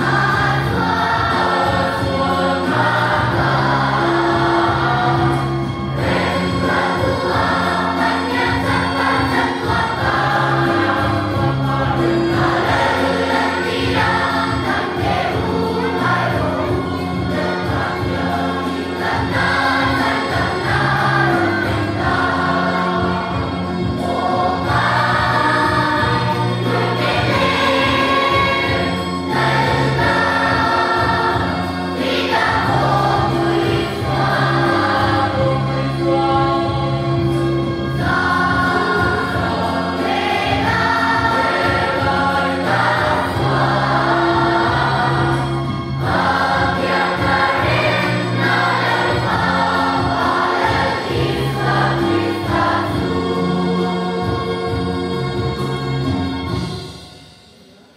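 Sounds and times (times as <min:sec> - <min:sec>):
children's choir singing: 0:00.0 - 0:57.9.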